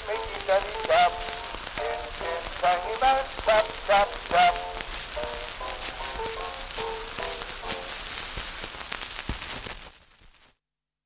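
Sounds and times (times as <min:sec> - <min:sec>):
gramophone surface hiss: 0:00.0 - 0:10.5
record clicks and crackles: 0:00.0 - 0:10.6.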